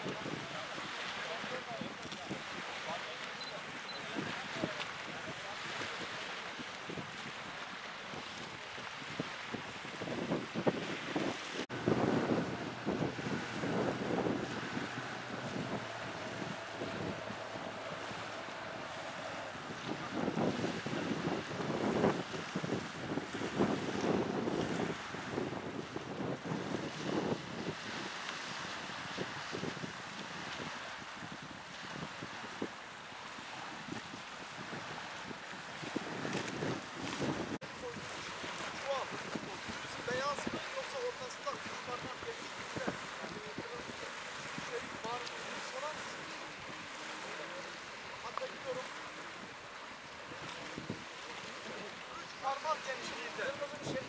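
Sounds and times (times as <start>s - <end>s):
wind buffeting microphone: 0.0s - 3.0s, 3.6s - 54.0s
waves washing on shore: 0.0s - 54.0s.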